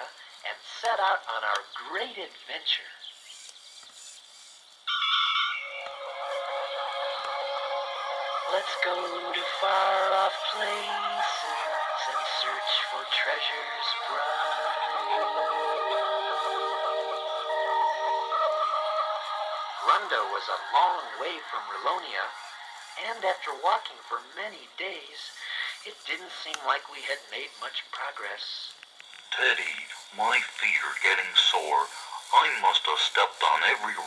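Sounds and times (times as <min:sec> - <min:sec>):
person narrating: 0:00.0 - 0:03.0, 0:08.4 - 0:17.2, 0:19.8 - 0:34.0
tape hiss: 0:00.0 - 0:34.0
distorted song intro from toy speaker: 0:05.7 - 0:23.8.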